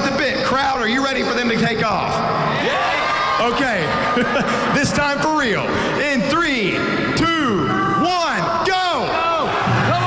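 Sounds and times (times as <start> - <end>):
crowd yelling and cheering: 0.0 - 10.0.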